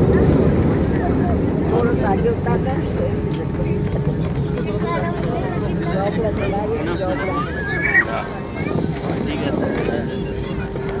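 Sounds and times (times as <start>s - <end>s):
airliner engines rumbling: 0.0s - 11.0s
passengers talking: 0.0s - 11.0s.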